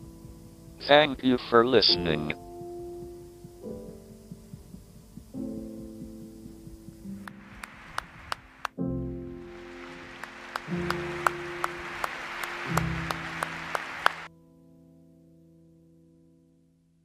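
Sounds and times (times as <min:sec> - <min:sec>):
slow music of sustained chords: 0:00.0 - 0:17.0
audience applauding: 0:07.3 - 0:08.7, 0:09.4 - 0:14.3.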